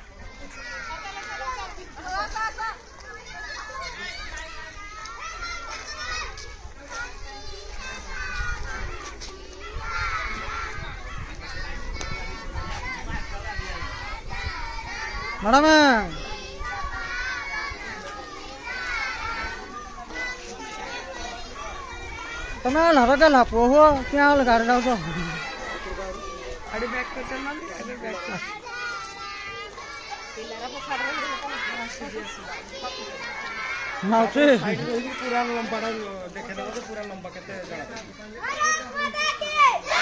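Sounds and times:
babble of children and adults: 0:00.0 - 0:40.0
group chattering and calling out: 0:00.0 - 0:40.0.

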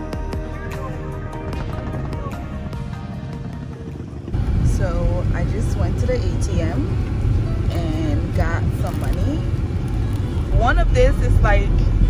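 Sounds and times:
car interior rumble: 0:01.3 - 0:12.0.

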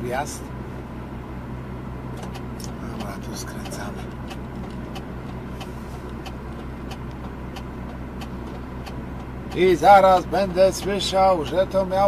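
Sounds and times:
road noise: 0:00.0 - 0:12.0
truck engine droning: 0:00.0 - 0:12.0.

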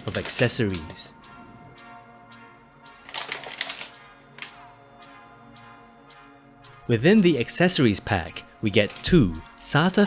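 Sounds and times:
plastic bag crinkling: 0:00.0 - 0:01.0, 0:03.0 - 0:04.5
background music: 0:00.0 - 0:10.0.

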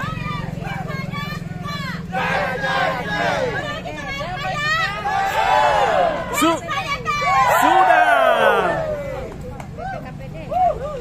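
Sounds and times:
crowd calling and shouting: 0:00.0 - 0:11.0
low engine hum: 0:00.0 - 0:11.0.

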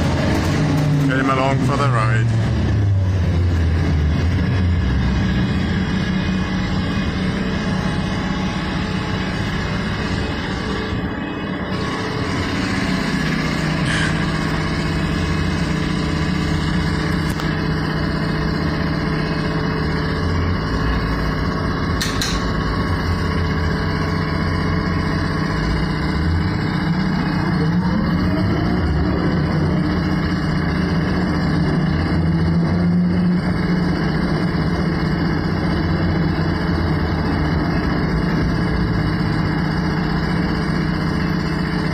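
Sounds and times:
electric drive whine: 0:00.0 - 0:41.9
trolleybus hum and rumble: 0:00.0 - 0:41.9.

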